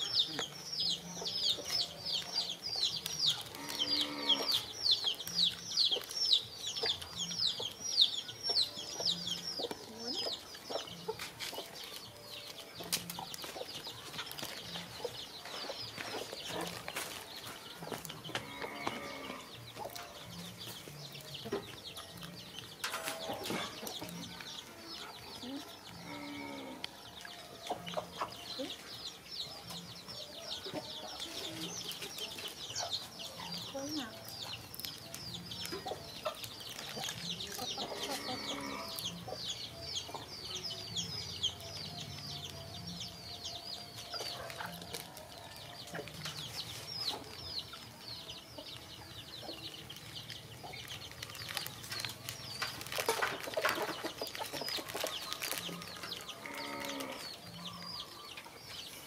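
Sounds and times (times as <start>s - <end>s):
birds chirping: 0.0s - 59.0s.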